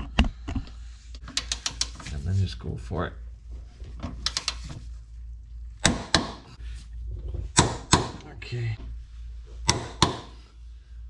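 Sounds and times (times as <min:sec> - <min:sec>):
torque wrench clicking: 0:01.2 - 0:02.0.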